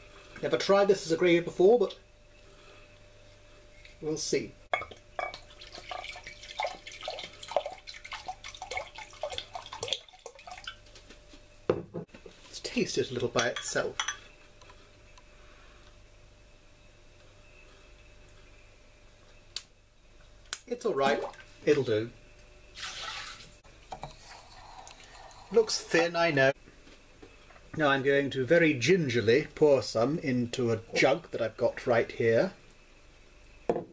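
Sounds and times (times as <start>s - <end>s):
liquid pouring: 5.3s - 10.9s, 22.8s - 25.9s.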